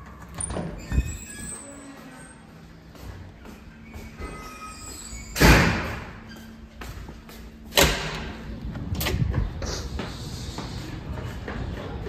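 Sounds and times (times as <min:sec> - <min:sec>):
heavy doors banging shut: 0:05.2 - 0:06.2.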